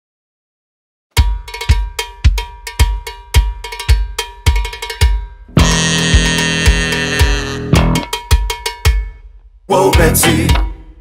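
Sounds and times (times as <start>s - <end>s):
bass drum beating: 1.2s - 8.6s, 10.0s - 10.7s
ringing cowbell: 1.2s - 9.3s.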